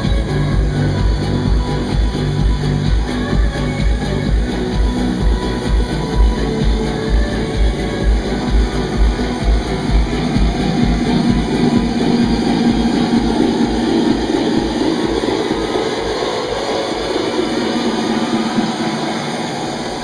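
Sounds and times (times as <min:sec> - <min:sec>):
kick drum beat: 0:00.0 - 0:20.0
loud electronic dance music: 0:00.0 - 0:20.0
noisy wash with held tone: 0:00.0 - 0:20.0.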